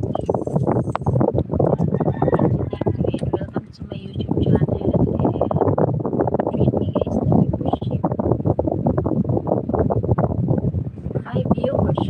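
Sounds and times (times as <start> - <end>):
woman talking: 0.0 - 0.8, 2.2 - 5.6, 6.5 - 8.0, 11.2 - 12.0.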